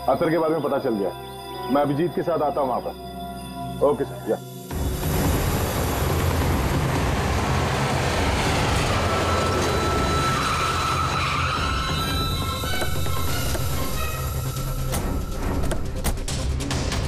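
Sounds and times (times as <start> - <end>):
high whine: 4.5 - 16.0
car engine and road noise: 4.7 - 16.4.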